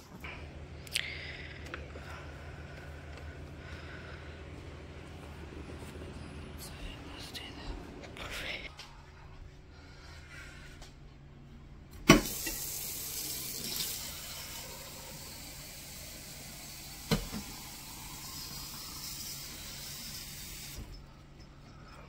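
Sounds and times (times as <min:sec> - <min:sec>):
water running from a tap: 0:12.1 - 0:21.0.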